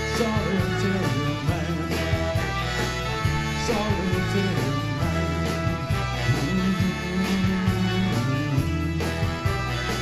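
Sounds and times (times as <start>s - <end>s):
bass line: 0.0s - 10.0s
drum beat: 0.0s - 10.0s
live band playing pop-rock: 0.0s - 10.0s.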